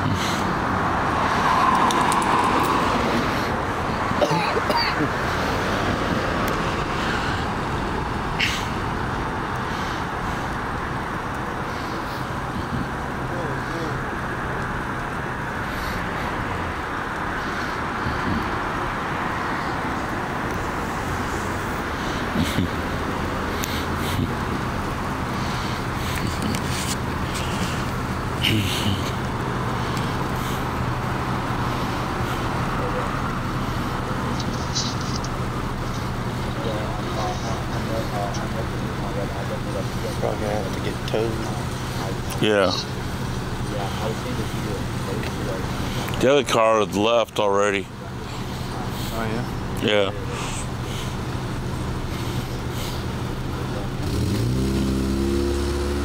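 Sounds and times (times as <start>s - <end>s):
idling car engine hum: 0.0s - 56.0s
street traffic noise: 0.0s - 56.0s.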